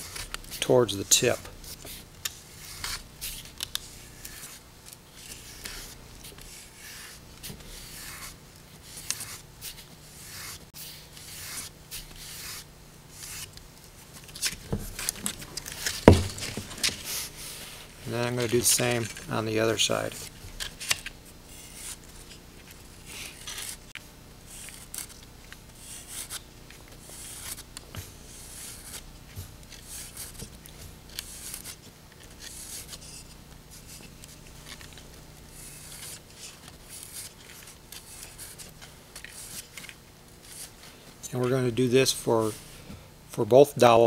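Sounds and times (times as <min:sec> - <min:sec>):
sandpaper sanding wood: 0:10.2 - 0:10.6, 0:11.2 - 0:13.4.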